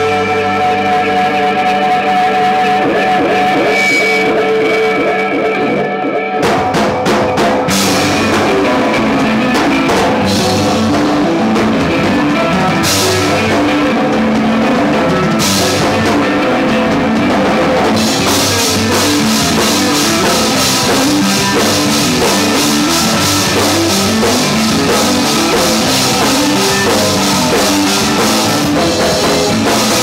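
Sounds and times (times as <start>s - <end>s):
rock band playing: 0.0s - 30.0s.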